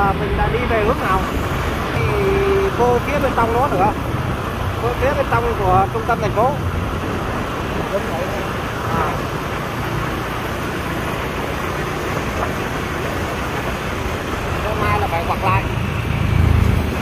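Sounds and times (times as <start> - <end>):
passing traffic: 0.0 - 17.0
road and wind noise: 0.0 - 17.0.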